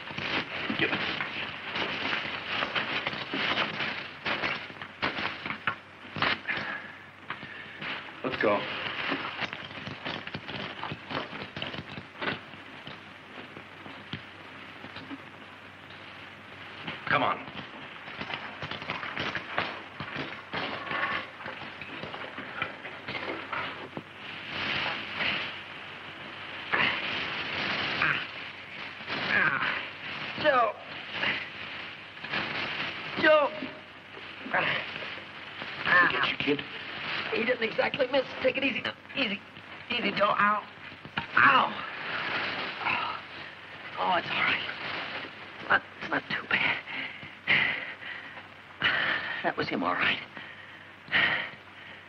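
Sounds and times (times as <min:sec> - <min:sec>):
hay rustling and crackling: 0:00.0 - 0:48.2
muffled voices: 0:24.8 - 0:51.7.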